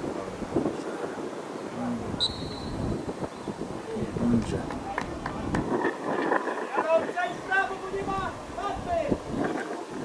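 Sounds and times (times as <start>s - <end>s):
wind rumbling on microphone: 0.0s - 10.0s
referee whistle blast: 2.2s - 2.8s.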